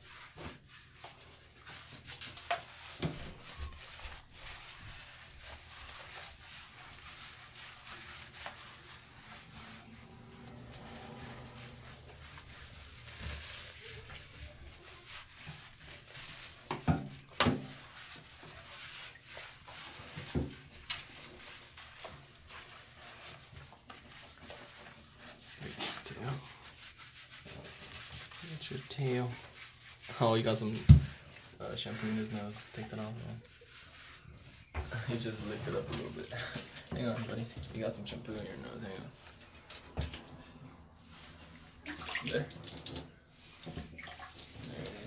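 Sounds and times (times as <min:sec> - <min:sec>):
hands rubbing wet dog coat: 0:00.0 - 0:45.0.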